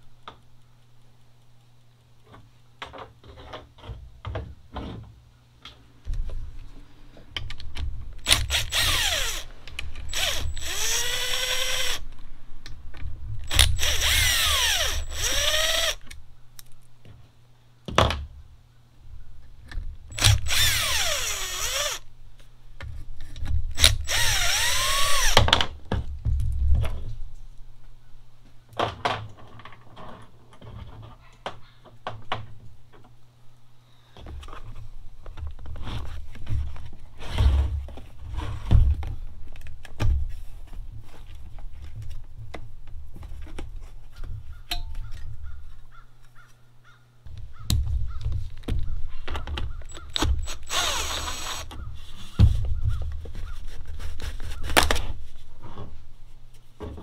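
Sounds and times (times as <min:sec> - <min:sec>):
small clicks and knocks: 0:00.2 - 0:06.4
cordless drill motor whine: 0:08.3 - 0:09.5, 0:10.1 - 0:12.0, 0:13.5 - 0:16.0, 0:20.1 - 0:22.0, 0:23.8 - 0:25.4, 0:49.9 - 0:51.7.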